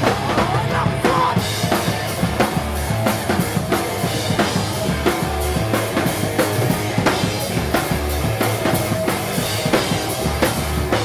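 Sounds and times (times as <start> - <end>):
punk band playing live: 0.0 - 11.0.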